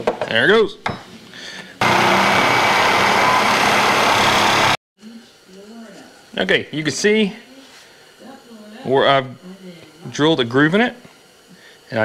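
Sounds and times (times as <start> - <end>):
power tool grinding metal: 1.8 - 4.8.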